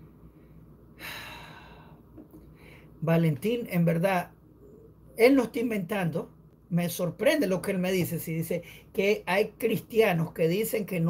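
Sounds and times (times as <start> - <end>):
man sighing: 1.0 - 2.0.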